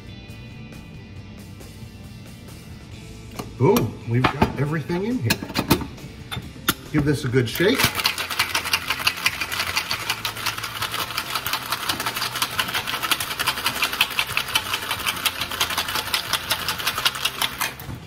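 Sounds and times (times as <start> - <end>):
ice rattling in cocktail shaker: 7.6 - 17.9.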